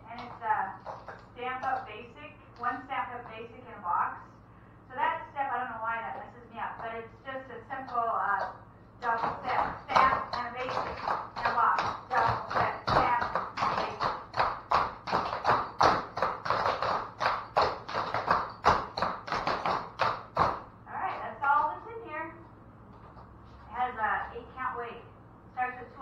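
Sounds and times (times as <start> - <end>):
tap shoes on wooden floor: 0.1 - 1.9, 7.9 - 21.2.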